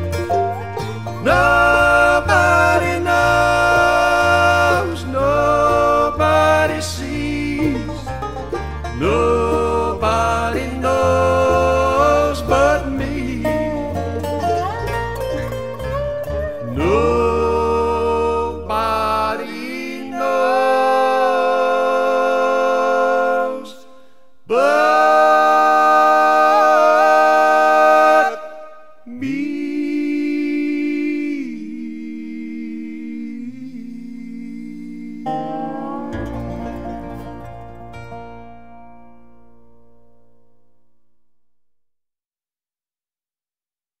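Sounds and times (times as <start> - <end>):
bluegrass band playing: 0.0 - 23.5, 35.2 - 39.4.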